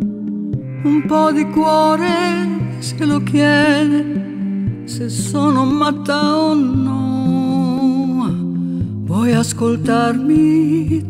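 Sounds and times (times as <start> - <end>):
soft instrumental accompaniment: 0.0 - 11.0.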